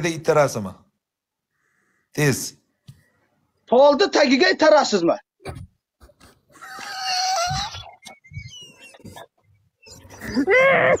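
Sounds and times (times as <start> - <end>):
high-pitched wavering laugh: 10.1 - 11.0.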